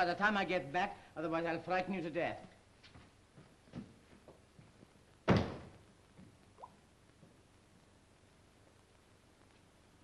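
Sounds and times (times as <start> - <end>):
steady background hiss: 0.0 - 10.0
door shutting with heavy thud: 5.3 - 5.7.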